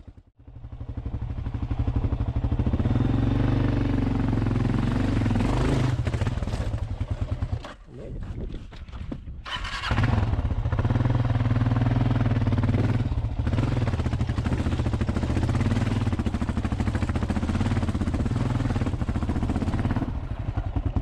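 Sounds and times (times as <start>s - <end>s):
motorcycle engine pulling under load: 2.8s - 7.8s, 8.6s - 21.0s.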